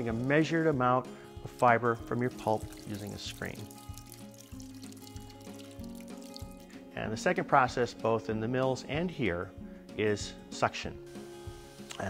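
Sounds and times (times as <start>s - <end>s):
water pouring and dripping: 0.0s - 0.8s, 1.5s - 6.9s
soft background music: 0.0s - 12.0s.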